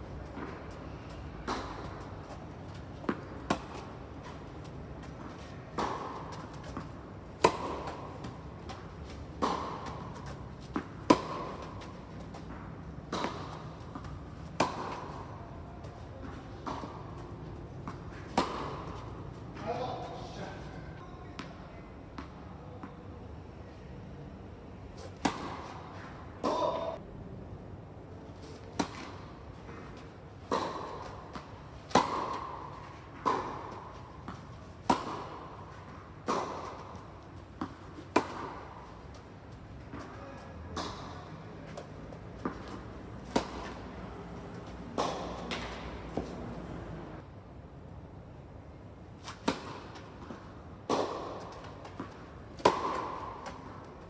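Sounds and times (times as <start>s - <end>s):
indoor hall hum: 0.0s - 54.0s
tennis ball struck by racket: 0.2s - 15.4s, 16.2s - 19.8s, 25.0s - 27.0s, 28.6s - 39.2s, 40.7s - 46.5s, 49.2s - 54.0s.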